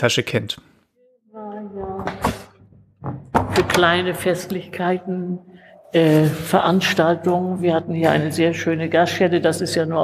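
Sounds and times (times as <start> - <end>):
knock on door: 1.8 - 3.8.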